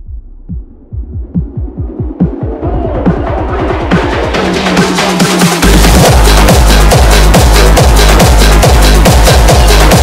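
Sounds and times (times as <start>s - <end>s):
sliding low bass notes: 5.6s - 10.0s.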